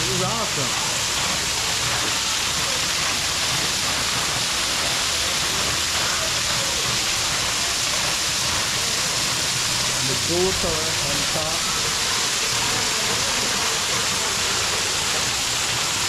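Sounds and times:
waterfall splashing into pool: 0.0 - 16.0.

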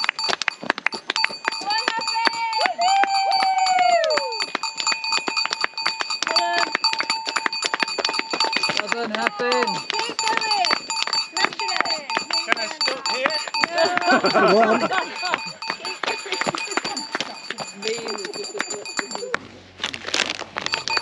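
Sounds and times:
cowbell ringing: 0.0 - 19.4, 20.6 - 21.0
voices calling: 1.0 - 19.6.

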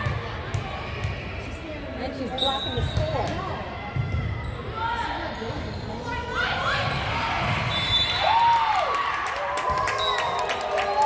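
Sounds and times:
sneakers squeaking on gym floor: 2.2 - 4.7.

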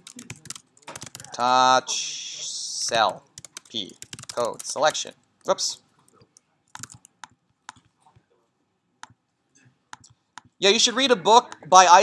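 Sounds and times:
keyboard and mouse clicks: 0.0 - 1.5, 2.8 - 8.3, 9.0 - 9.2, 9.9 - 10.6.

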